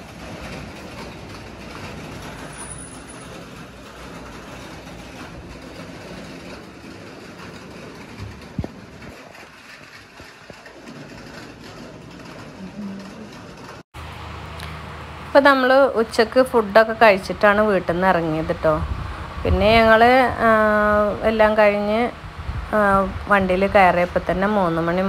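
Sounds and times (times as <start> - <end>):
background rumble and hum: 3.3 - 25.0.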